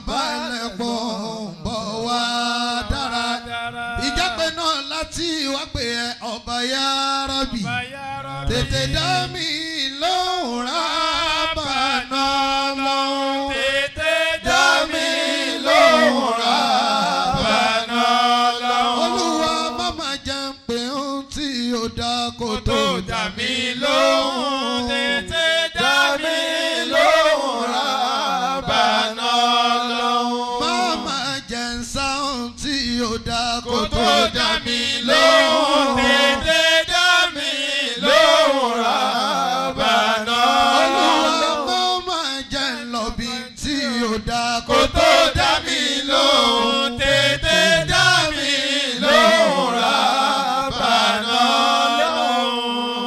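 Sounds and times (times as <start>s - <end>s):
man chanting: 0.0s - 15.0s, 19.0s - 25.9s, 29.8s - 35.2s, 35.9s - 49.8s.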